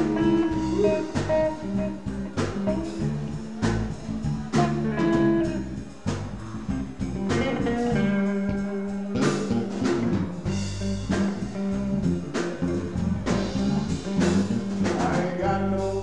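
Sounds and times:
blues band playing: 0:00.0 - 0:16.0
guitar playing held notes: 0:00.0 - 0:16.0.

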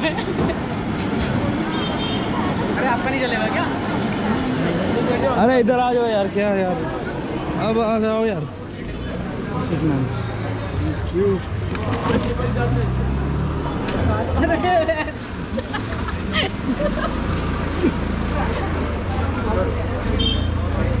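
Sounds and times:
people chattering: 0:00.0 - 0:21.0.

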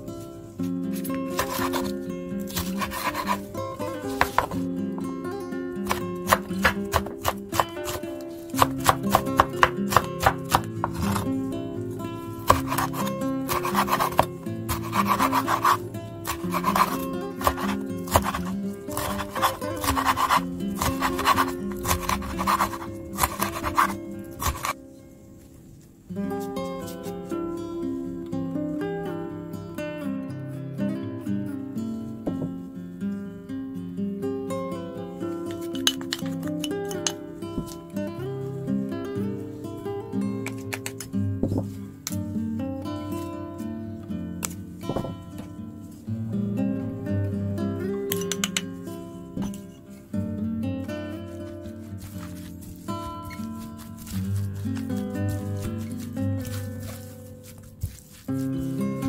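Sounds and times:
background music: 0:00.0 - 0:24.8
knife chopping on cutting board: 0:01.4 - 0:01.9, 0:02.5 - 0:03.4, 0:04.1 - 0:04.6, 0:05.9 - 0:11.3, 0:12.4 - 0:24.8, 0:52.0 - 0:58.7.

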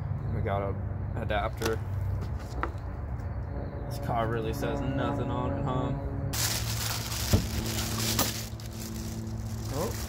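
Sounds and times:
plastic bag crinkling: 0:06.4 - 0:10.0.

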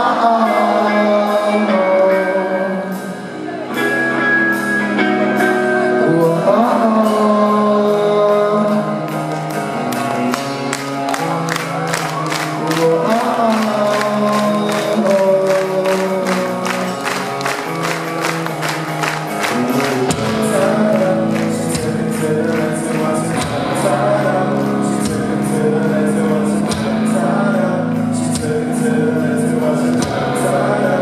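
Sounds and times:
drums keeping a steady beat: 0:00.6 - 0:31.0.

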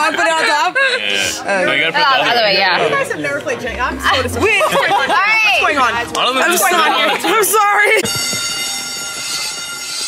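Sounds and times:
alarm-like buzzer: 0:08.0 - 0:10.0.

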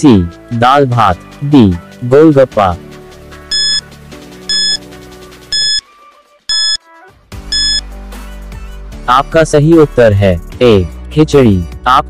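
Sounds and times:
soft background music: 0:00.0 - 0:12.0
short electronic beeps: 0:03.5 - 0:03.8, 0:04.5 - 0:04.8, 0:05.5 - 0:05.8, 0:06.5 - 0:06.8, 0:07.5 - 0:07.8.

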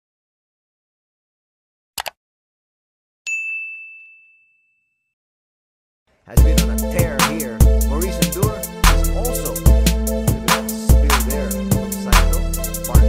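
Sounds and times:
bright high-pitched ding: 0:03.3 - 0:04.8.

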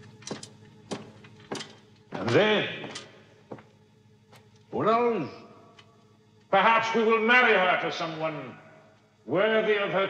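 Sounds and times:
faint steady hum: 0:00.0 - 0:10.0
boot footsteps on hard floor: 0:00.2 - 0:04.5.

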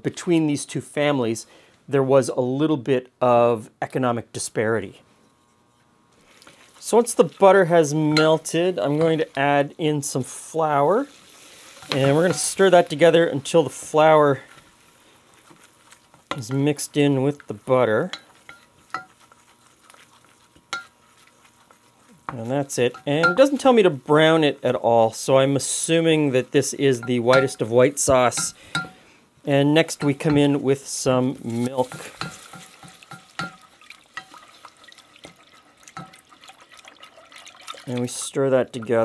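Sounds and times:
faint sizzle: 0:02.6 - 0:39.0
wooden spoon stirring bubbling roux: 0:06.2 - 0:39.0
spoon knocking against pot: 0:27.0 - 0:27.6, 0:28.3 - 0:29.0, 0:31.9 - 0:34.4, 0:36.0 - 0:36.2.

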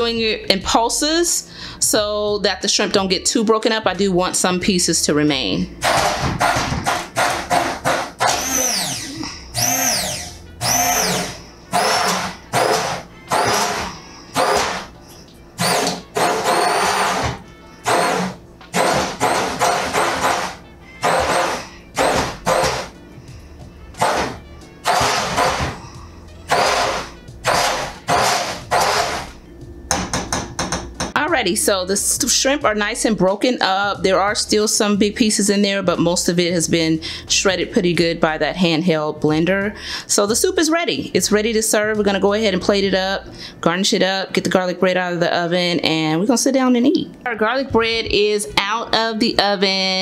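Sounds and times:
immersion blender pulsing: 0:05.8 - 0:23.0, 0:23.6 - 0:29.4.

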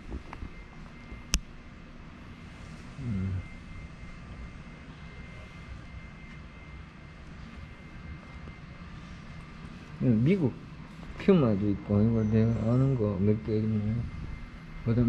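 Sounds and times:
low indoor hum: 0:00.0 - 0:15.0
faint high-pitched tone: 0:02.6 - 0:15.0
murmured voice: 0:03.0 - 0:03.6.

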